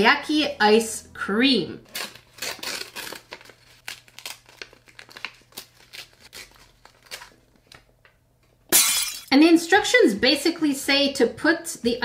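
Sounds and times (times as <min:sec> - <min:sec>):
packet crinkling and tearing: 0:01.9 - 0:07.8.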